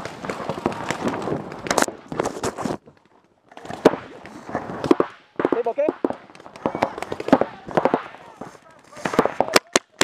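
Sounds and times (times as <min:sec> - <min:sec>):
paintball markers firing: 0:03.6 - 0:10.0.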